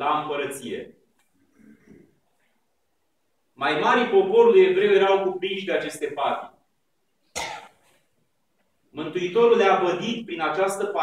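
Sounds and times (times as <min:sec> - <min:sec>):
short cough: 0:07.3 - 0:07.9.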